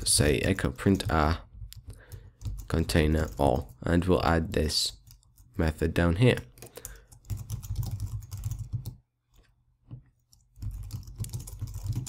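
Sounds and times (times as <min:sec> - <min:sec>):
computer keyboard typing: 0:00.5 - 0:03.8, 0:04.9 - 0:05.6, 0:06.4 - 0:09.0, 0:10.3 - 0:12.0.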